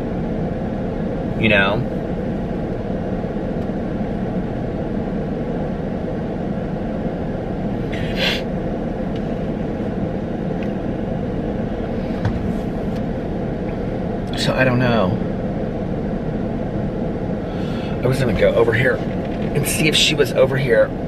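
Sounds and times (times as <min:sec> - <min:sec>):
car engine rumble: 0:00.0 - 0:21.0
ventilation fan blowing: 0:00.0 - 0:21.0.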